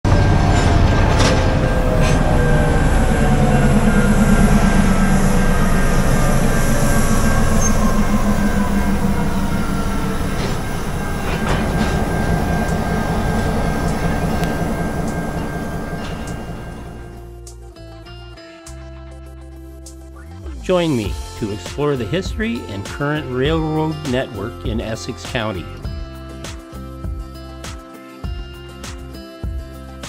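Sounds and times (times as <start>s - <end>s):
diesel locomotive rumbling: 0.0s - 17.4s
wheels squealing on rails: 0.1s - 17.3s.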